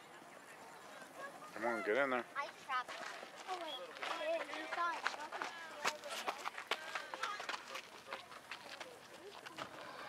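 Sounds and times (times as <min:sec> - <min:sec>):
chatter of overlapping voices: 0:00.0 - 0:10.0.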